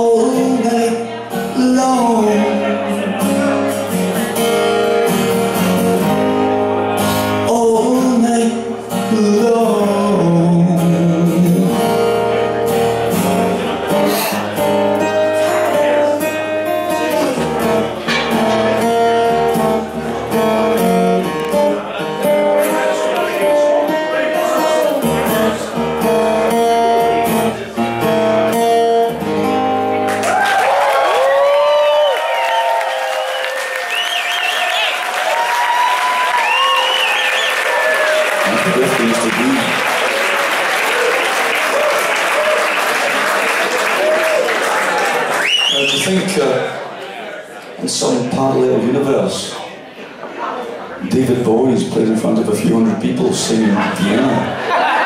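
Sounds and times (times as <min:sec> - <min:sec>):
solo guitar chords: 0:00.0 - 0:30.2
audience applauding: 0:30.0 - 0:46.8
audience cheering and whistling: 0:30.2 - 0:46.3.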